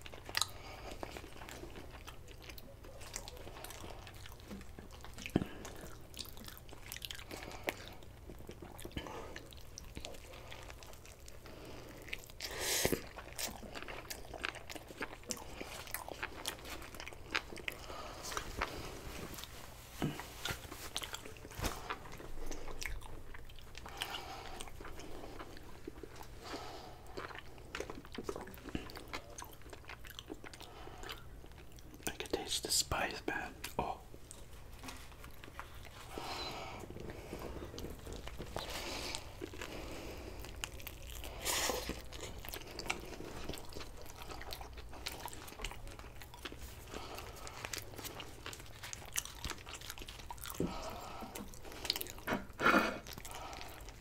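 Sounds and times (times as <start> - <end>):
biting and chewing: 0.0 - 32.1, 33.6 - 54.0
food crunching: 0.0 - 54.0.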